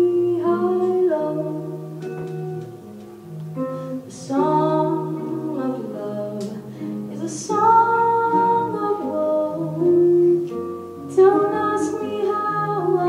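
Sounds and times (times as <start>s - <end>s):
woman singing into microphone: 0.0s - 2.4s, 3.6s - 13.0s
electric guitar chords: 0.0s - 13.0s.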